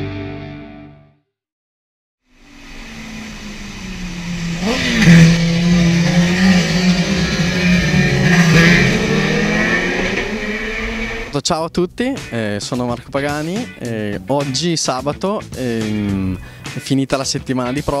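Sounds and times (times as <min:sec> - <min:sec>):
motorbike passing at full throttle: 0:02.4 - 0:11.4.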